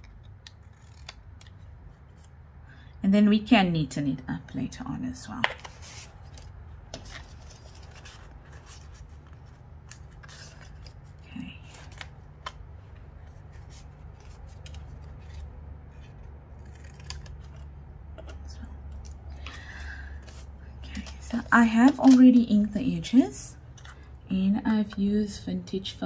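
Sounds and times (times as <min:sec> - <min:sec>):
scissors cutting cardboard: 0:13.3 - 0:18.4.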